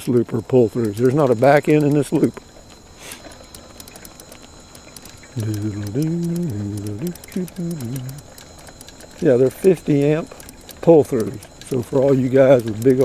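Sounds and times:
man's wordless voice: 5.4 - 8.2.

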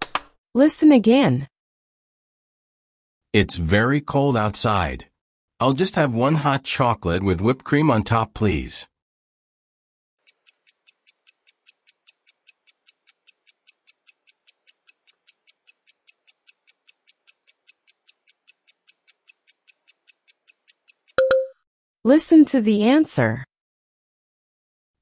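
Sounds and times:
click: 10.2 - 21.4
clock ticking: 10.2 - 21.5
short beep: 21.2 - 21.6.

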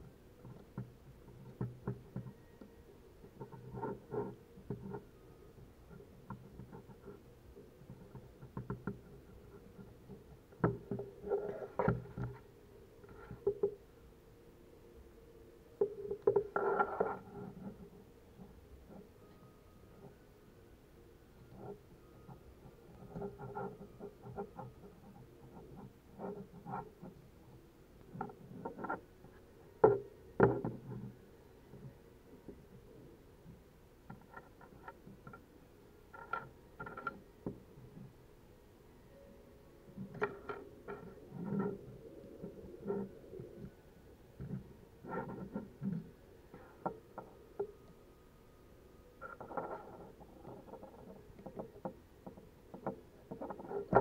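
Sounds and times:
light plastic clicks and scrapes: 7.8 - 13.8, 28.0 - 32.6, 34.0 - 35.5, 36.1 - 38.1, 40.0 - 43.8, 44.4 - 48.0, 49.2 - 54.0.

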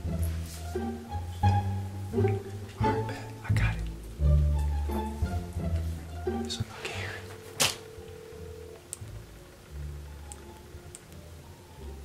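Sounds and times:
phone ringing tone: 6.9 - 10.7.

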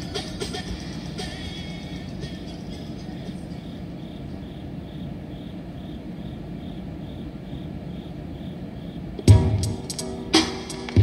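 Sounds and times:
cricket chirping: 0.0 - 10.7
low background rumble: 0.0 - 11.0.

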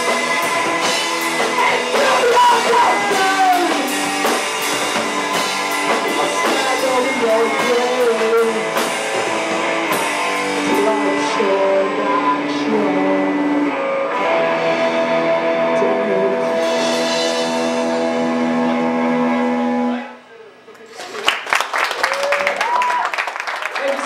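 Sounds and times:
live rock band playing: 0.0 - 20.2
audience clapping: 20.7 - 24.0.

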